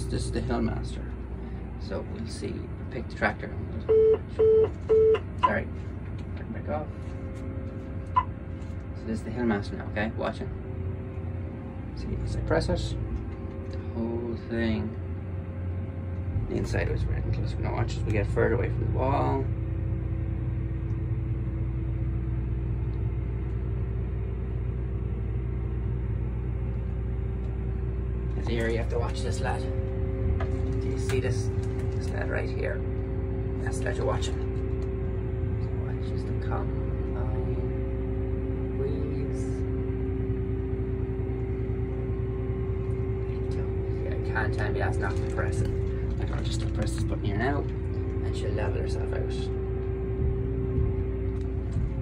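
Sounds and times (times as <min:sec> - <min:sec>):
combine engine drone: 0:00.0 - 0:52.0
mechanical whine: 0:00.0 - 0:52.0
steady hum: 0:00.0 - 0:52.0.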